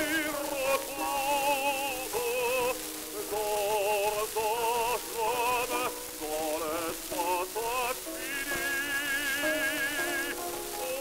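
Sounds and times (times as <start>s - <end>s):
operatic baritone singing: 0.0s - 11.0s
record surface hiss and crackle: 0.0s - 11.0s.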